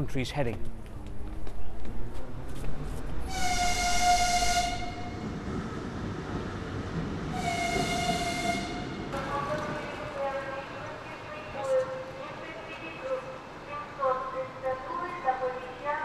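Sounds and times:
low rumble of trains: 0.0s - 16.0s
locomotive horn blasts: 3.3s - 5.2s, 7.4s - 9.0s.

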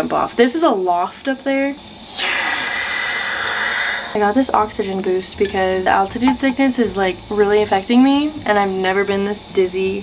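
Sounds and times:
compressed oxygen hissing: 2.0s - 4.8s.

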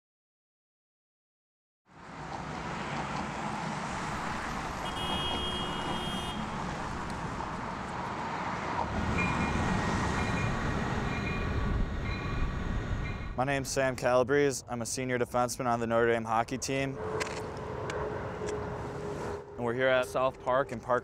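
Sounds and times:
city traffic rumble: 1.9s - 21.0s.

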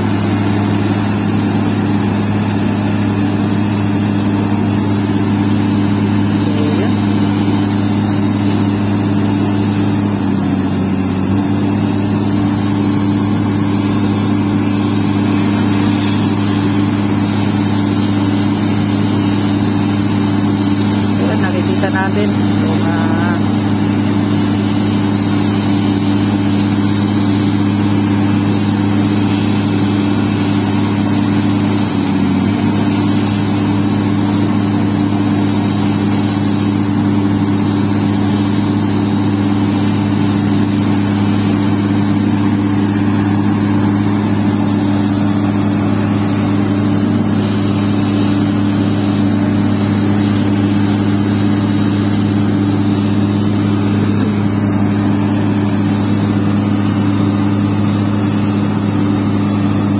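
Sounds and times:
excavator diesel engine humming: 0.0s - 59.9s.

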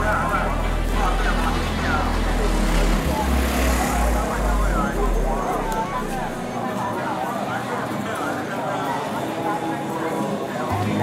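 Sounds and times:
street crowd voices: 0.0s - 11.0s.

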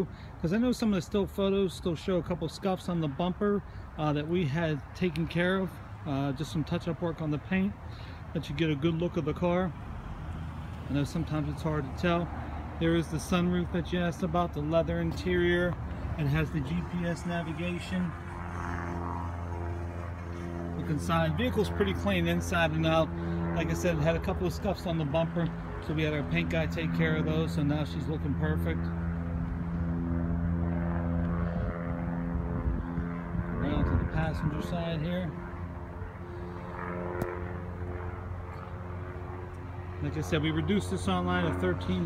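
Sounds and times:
steady low hum: 2.9s - 42.0s.

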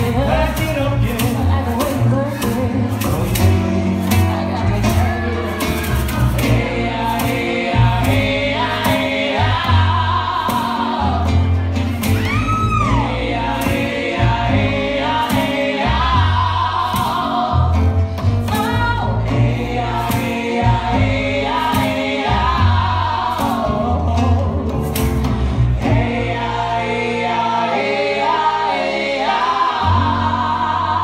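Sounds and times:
woman singing: 0.0s - 11.4s, 18.4s - 24.8s
acoustic guitar: 0.0s - 31.0s
bass guitar groove: 0.0s - 31.0s.

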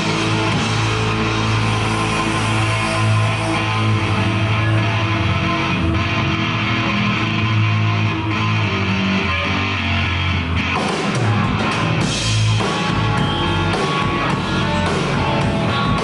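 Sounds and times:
drums: 0.0s - 16.0s
electric guitars: 0.0s - 16.0s
live rock band playing: 0.0s - 16.0s.

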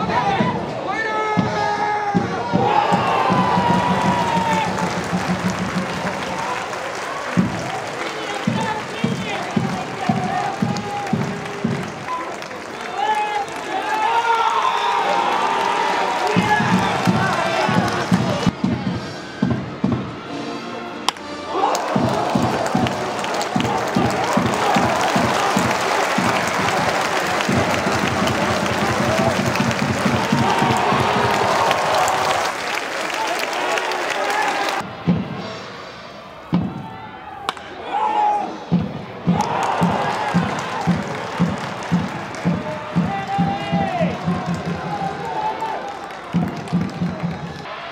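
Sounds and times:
drum beating steadily: 1.3s - 6.6s, 7.2s - 12.1s, 16.3s - 20.2s, 21.8s - 32.4s, 34.8s - 35.8s, 38.6s - 45.3s, 46.3s - 47.6s
crowd chanting: 13.5s - 18.6s, 21.3s - 47.9s.

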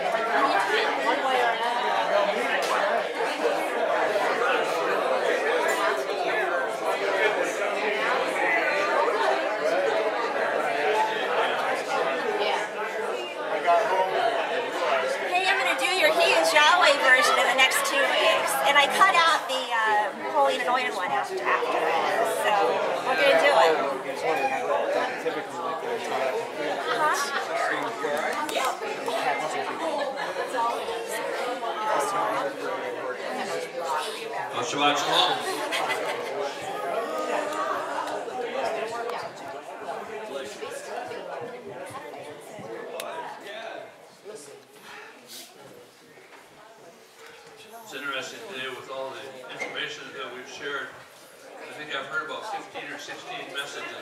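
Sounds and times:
crowd chatting in a hall: 0.0s - 54.0s
many people talking: 0.0s - 54.0s.

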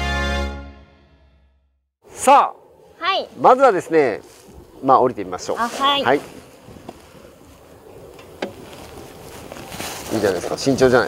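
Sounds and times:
wind rumble on microphone: 3.9s - 11.0s.

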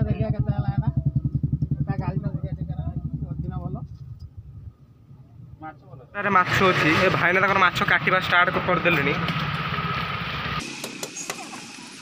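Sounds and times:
engine throbbing: 0.0s - 5.6s, 6.2s - 10.6s.

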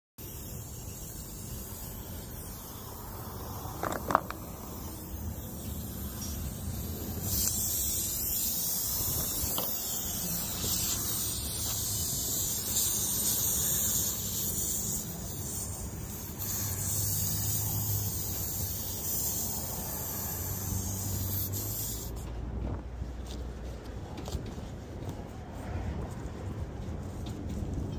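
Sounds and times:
air hissing from tire puncture: 0.2s - 27.9s.

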